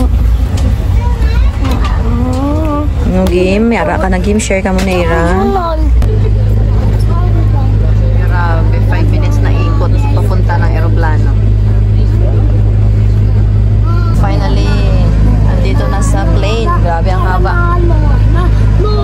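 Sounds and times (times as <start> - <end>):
bus interior drone: 0.0 - 19.0
faint voices: 0.0 - 19.0.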